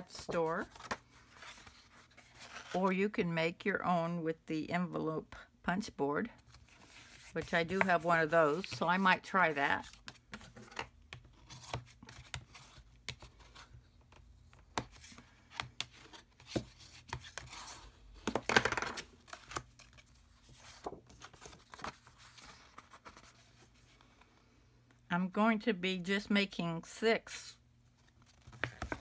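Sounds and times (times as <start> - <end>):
paper rustling: 19.2 - 24.0.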